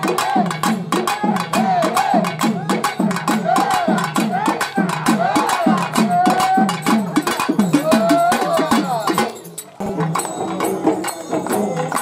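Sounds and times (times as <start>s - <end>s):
hand drum beating: 0.6s - 12.0s.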